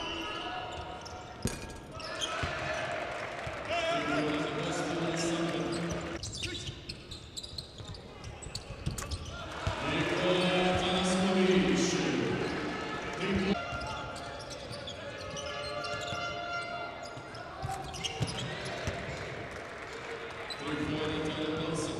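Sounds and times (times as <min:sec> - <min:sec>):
crowd voices: 0:09.2 - 0:21.9.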